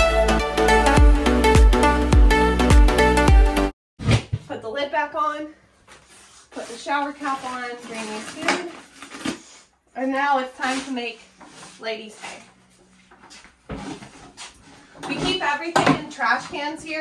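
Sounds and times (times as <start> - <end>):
electronic music with steady beat: 0.0 - 3.7
plastic buckets being handled: 5.9 - 9.7, 10.4 - 17.0.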